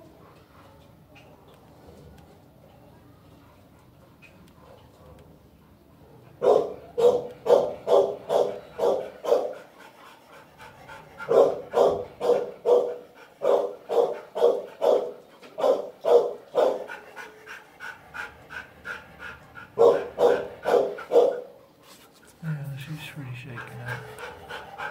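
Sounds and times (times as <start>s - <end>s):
dog barking: 6.0s - 9.6s, 11.2s - 17.0s, 19.8s - 21.6s.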